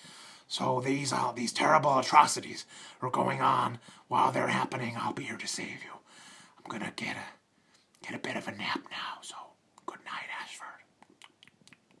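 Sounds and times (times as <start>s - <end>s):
man whispering: 0.5s - 7.4s, 8.0s - 11.0s.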